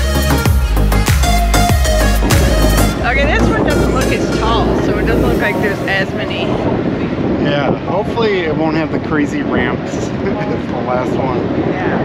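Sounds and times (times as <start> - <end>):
low bass sound: 1.1 - 7.0
wind buffeting microphone: 1.6 - 12.0
indistinct voices: 2.1 - 6.9.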